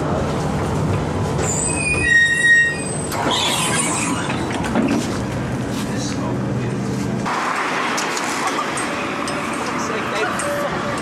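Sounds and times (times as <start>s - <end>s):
tram rumbling: 0.0s - 11.0s
tram wheels squealing: 1.4s - 4.6s.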